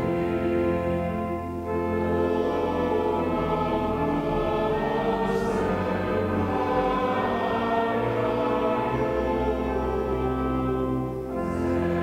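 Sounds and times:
choir singing a hymn: 0:00.0 - 0:12.0
organ chords: 0:00.0 - 0:12.0.

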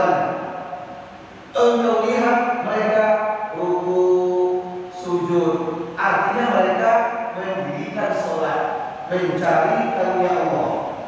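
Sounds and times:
man chanting: 0:00.0 - 0:00.5, 0:01.6 - 0:10.9.

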